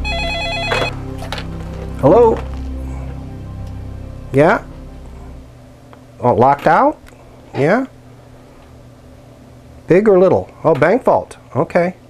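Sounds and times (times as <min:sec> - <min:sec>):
telephone ringing electronic warble: 0:00.0 - 0:01.0.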